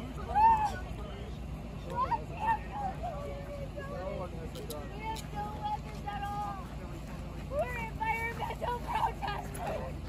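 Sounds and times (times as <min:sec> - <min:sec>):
distant people calling out: 0:00.0 - 0:04.2, 0:04.9 - 0:10.0
low steady rumble: 0:00.0 - 0:10.0.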